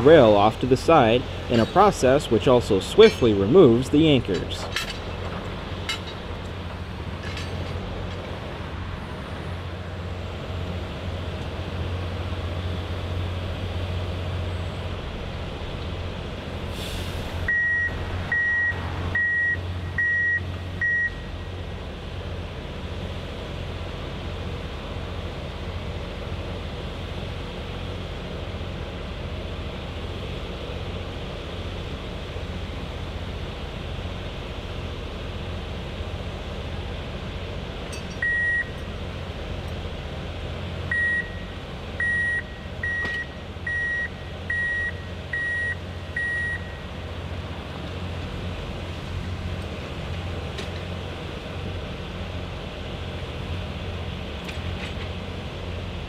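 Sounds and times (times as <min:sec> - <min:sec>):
diesel engine idling: 0:00.0 - 0:56.0
backup alarm beeping: 0:17.5 - 0:21.3, 0:38.2 - 0:38.8, 0:40.9 - 0:46.9.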